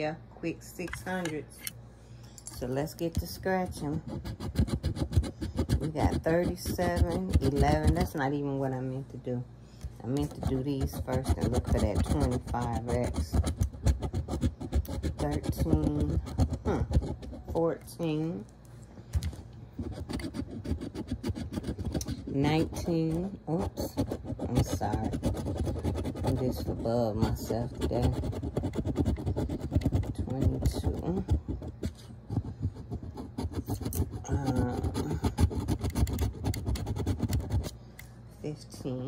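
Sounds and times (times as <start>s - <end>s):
coin scraping scratch card: 3.2s - 8.2s, 10.1s - 17.6s, 19.8s - 37.8s.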